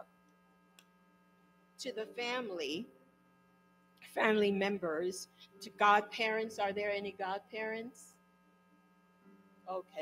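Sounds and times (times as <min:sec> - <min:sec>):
electrical mains hum: 0:00.0 - 0:10.0
woman speaking: 0:01.8 - 0:02.9, 0:04.1 - 0:08.1, 0:09.7 - 0:10.0.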